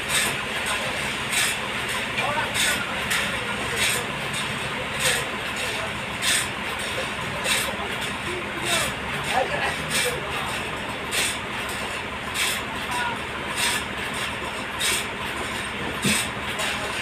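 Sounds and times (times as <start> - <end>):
forklift engine running: 0.0 - 17.0.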